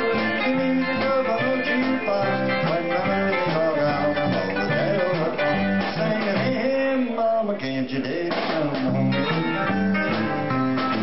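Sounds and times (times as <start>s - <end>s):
low bass line: 0.0s - 6.7s, 8.8s - 11.0s
country band playing: 0.0s - 11.0s.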